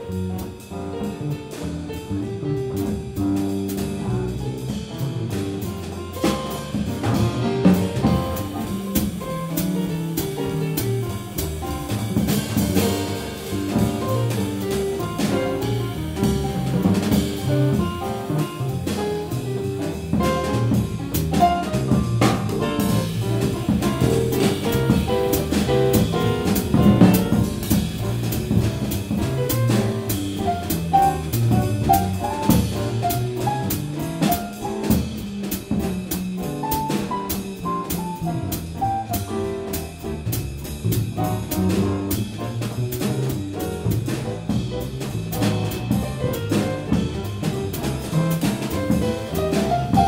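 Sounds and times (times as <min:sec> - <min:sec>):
drum kit with cymbals: 0:00.0 - 0:50.0
grand piano: 0:00.0 - 0:50.0
upright bass: 0:00.0 - 0:50.0.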